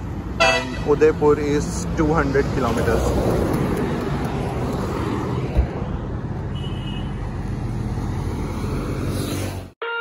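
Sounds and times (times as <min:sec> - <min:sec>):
car road and engine noise: 0:00.0 - 0:09.8.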